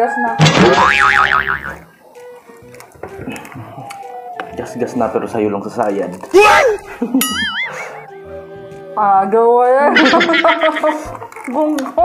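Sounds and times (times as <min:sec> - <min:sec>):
cartoon boing: 0:00.4 - 0:01.8.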